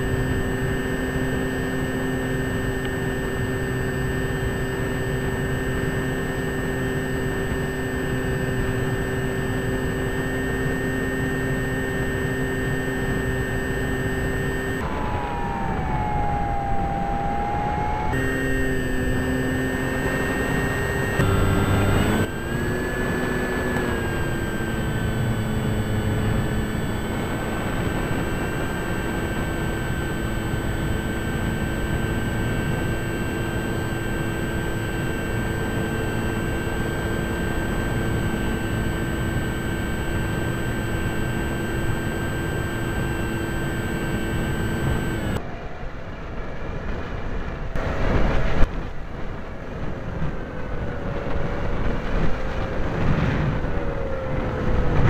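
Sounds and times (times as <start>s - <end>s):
model airplane motor: 0.0s - 45.4s
wind noise: 45.6s - 55.0s.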